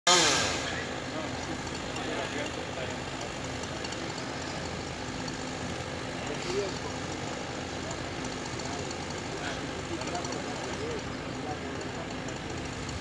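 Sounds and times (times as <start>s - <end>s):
chainsaw engine revving and idling: 0.1s - 13.0s.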